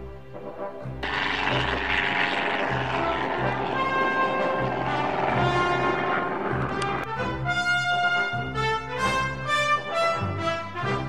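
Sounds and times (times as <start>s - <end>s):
music playing: 0.0s - 11.0s
propeller plane engine drone: 0.0s - 11.0s.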